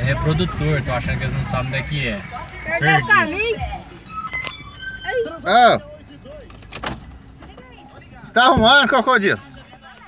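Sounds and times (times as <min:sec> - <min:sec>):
car idling from inside cabin: 0:00.0 - 0:10.0.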